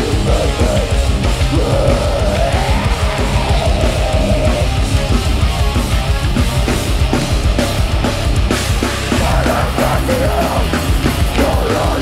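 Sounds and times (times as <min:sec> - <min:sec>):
hardcore band playing live: 0:00.0 - 0:12.0.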